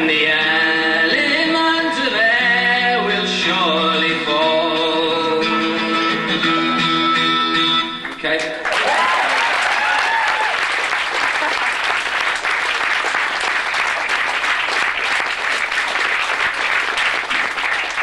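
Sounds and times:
audience applauding and cheering: 0:08.0 - 0:18.0
audience shouts: 0:08.7 - 0:10.6.

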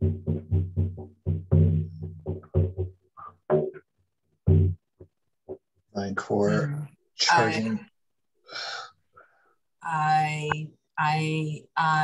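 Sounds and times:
person breathing in sharply: 0:08.4 - 0:09.5
person gasping: 0:08.5 - 0:09.3.

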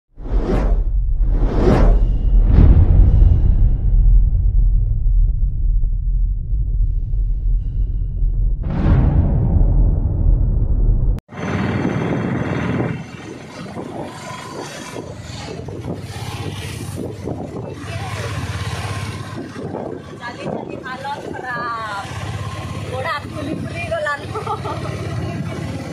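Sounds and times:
deep rumble: 0:00.2 - 0:20.9
vehicle and road noise: 0:10.6 - 0:25.9.

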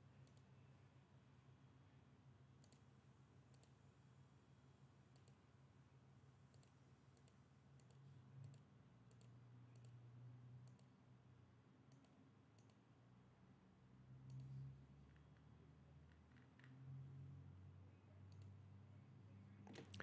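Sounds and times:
faint computer mouse clicks: 0:00.2 - 0:00.5, 0:02.6 - 0:02.9, 0:03.5 - 0:03.8, 0:05.1 - 0:05.4, 0:06.5 - 0:10.0, 0:10.6 - 0:11.0, 0:11.9 - 0:12.8, 0:14.2 - 0:15.5, 0:18.3 - 0:18.6.

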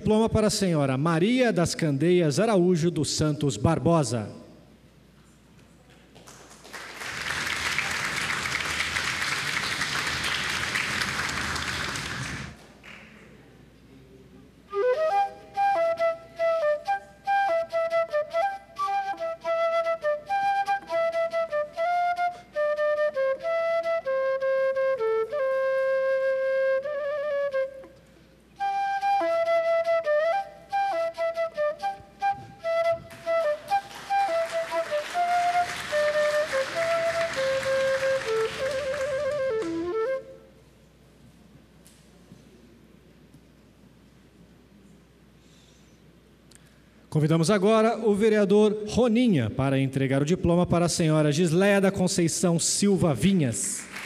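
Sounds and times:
applause: 0:05.9 - 0:13.4, 0:33.1 - 0:39.9, 0:53.6 - 0:54.0
slow flute melody: 0:14.7 - 0:41.0.

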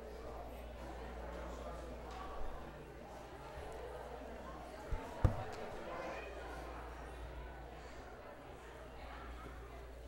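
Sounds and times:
murmur of people talking: 0:00.0 - 0:10.0
dull thumps: 0:04.9 - 0:05.8.

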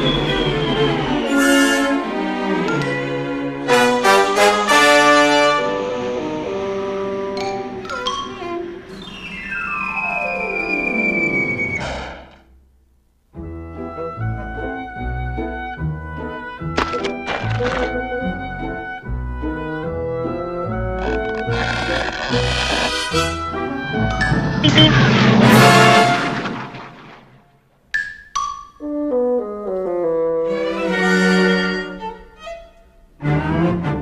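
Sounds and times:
descending whistle-like glide: 0:00.0 - 0:01.6, 0:08.8 - 0:12.4
orchestra playing: 0:00.2 - 0:08.9, 0:23.0 - 0:26.8, 0:29.0 - 0:32.4.

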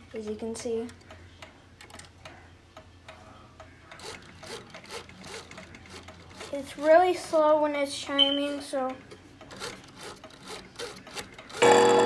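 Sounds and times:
clock mechanism clicking: 0:00.2 - 0:06.6, 0:08.9 - 0:12.0
mechanism rubbing and scraping: 0:03.9 - 0:07.0, 0:09.5 - 0:11.6.

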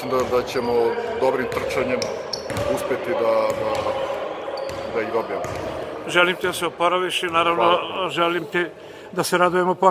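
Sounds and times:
basketballs bouncing in echoing hall: 0:00.0 - 0:08.0.

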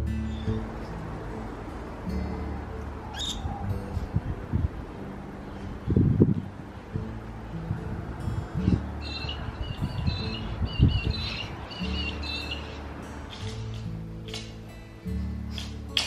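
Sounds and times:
background music with chords: 0:00.0 - 0:16.0
bird chirps: 0:03.1 - 0:03.4, 0:08.6 - 0:13.7.

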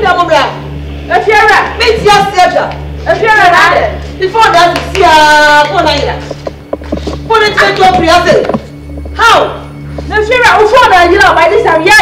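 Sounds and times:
woman shouting: 0:00.0 - 0:06.2, 0:09.2 - 0:12.0
low hum: 0:00.0 - 0:12.0.

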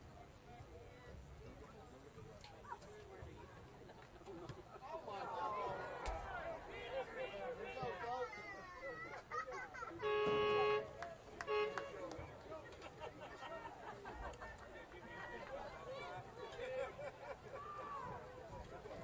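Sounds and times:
players and spectators shouting: 0:04.9 - 0:09.2, 0:14.6 - 0:18.6
horn blasts: 0:10.0 - 0:12.2.

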